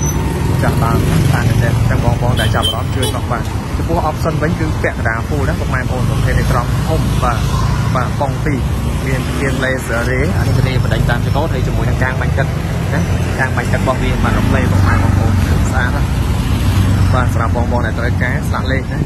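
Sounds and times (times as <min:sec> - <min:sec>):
street traffic rumble: 0:00.0 - 0:19.0
person talking: 0:00.6 - 0:16.1.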